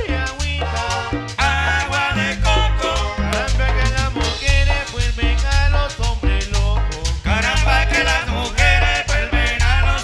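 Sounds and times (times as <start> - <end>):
accordion melody: 0.0 - 10.0
congas: 0.0 - 10.0
heavy bass line: 0.0 - 10.0.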